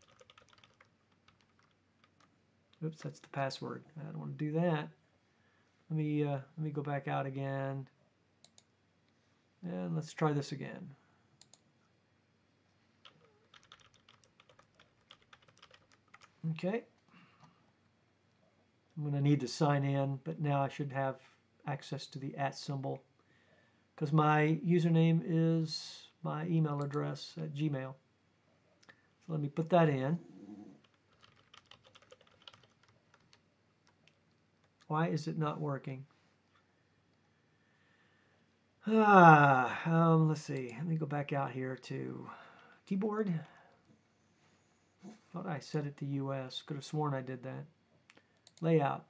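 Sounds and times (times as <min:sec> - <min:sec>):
typing on computer keyboard: 0:00.0 - 0:02.3, 0:13.0 - 0:16.4, 0:30.8 - 0:34.8.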